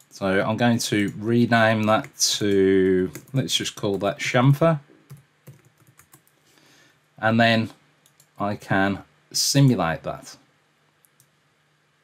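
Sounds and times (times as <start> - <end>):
computer keyboard typing: 0.9 - 4.1, 5.1 - 6.4, 8.0 - 8.4.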